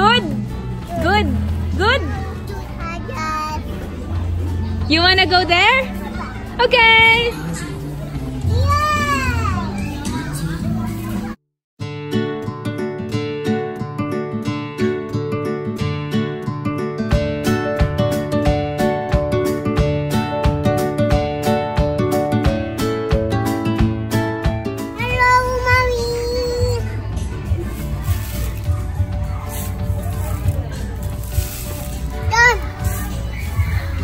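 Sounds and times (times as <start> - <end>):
background music: 0.0 - 34.0.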